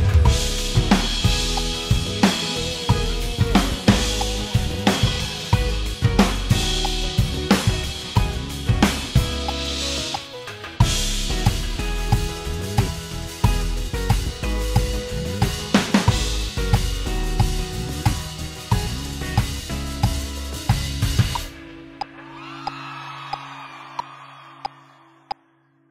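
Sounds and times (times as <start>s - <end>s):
cymbal crash: 0.0s - 9.5s, 10.8s - 14.4s
drum kit playing: 0.0s - 21.6s
pop backing track: 0.0s - 24.8s.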